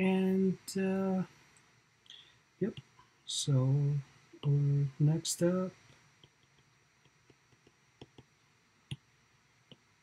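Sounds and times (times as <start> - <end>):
stylus tapping on glass screen: 6.2 - 8.3.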